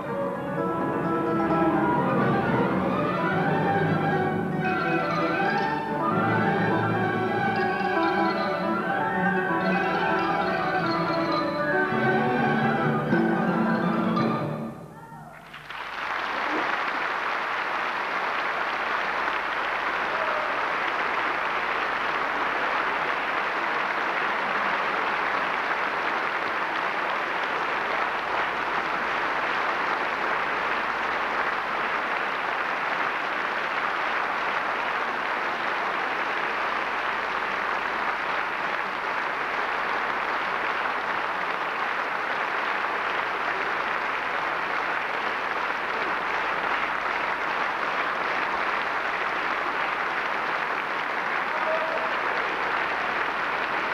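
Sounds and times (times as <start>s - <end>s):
audience applause: 0.0s - 14.3s, 15.0s - 53.9s.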